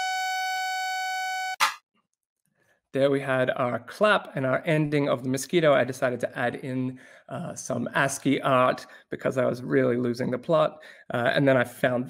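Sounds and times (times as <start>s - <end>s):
hand clap sound effect: 1.6s - 1.8s.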